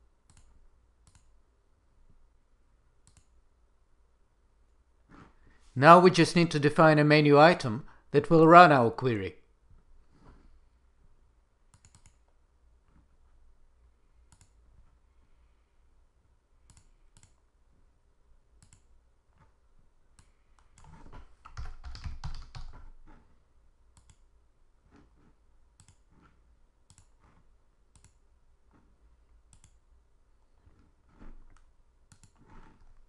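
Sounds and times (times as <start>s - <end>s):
computer mouse clicks: 0.2s - 1.4s, 3.0s - 3.4s, 11.7s - 12.4s, 14.2s - 14.7s, 16.6s - 17.4s, 18.6s - 19.5s, 20.1s - 23.0s, 23.9s - 24.3s, 24.9s - 28.2s, 29.4s - 29.9s, 30.6s - 33.0s
rapid keyboard typing: 20.8s - 23.0s.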